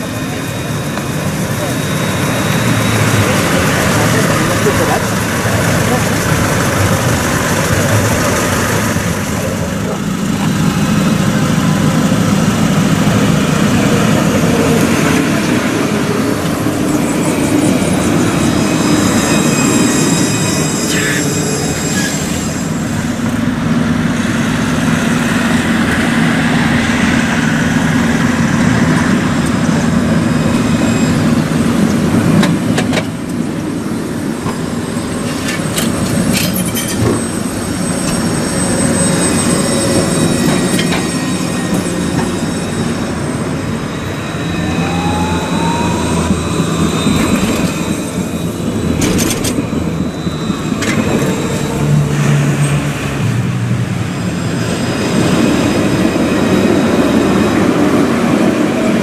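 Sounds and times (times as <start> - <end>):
street traffic: 0.0 - 59.0
trams running on rails: 0.0 - 59.0
sharp clicks of passing tram: 31.4 - 33.7, 34.3 - 44.2, 46.0 - 59.0
thin high tone: 36.7 - 51.9.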